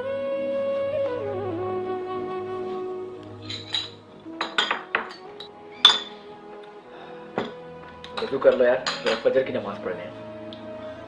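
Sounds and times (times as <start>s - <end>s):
soft background music: 0.0s - 11.0s
tableware clinking: 3.4s - 6.3s, 7.4s - 9.3s.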